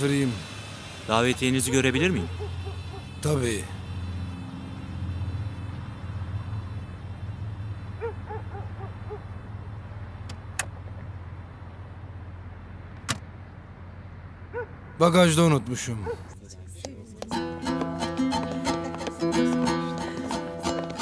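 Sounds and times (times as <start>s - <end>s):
car engine idling: 0.0s - 15.1s.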